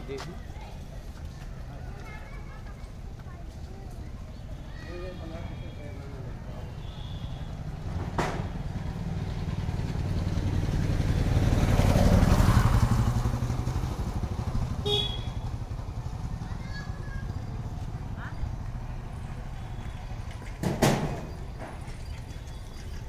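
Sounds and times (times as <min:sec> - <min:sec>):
motorcycle passing by: 0:07.3 - 0:21.4.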